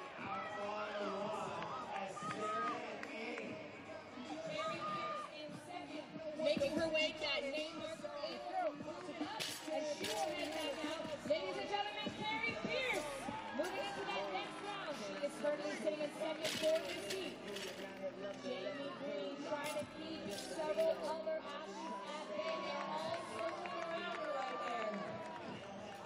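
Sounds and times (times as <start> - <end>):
crowd shouting and cheering: 0.0 - 26.0.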